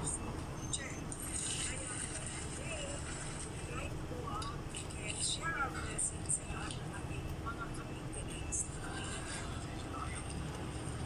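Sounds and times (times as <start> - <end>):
faint voices: 0.0 - 11.0
low street rumble: 0.0 - 11.0.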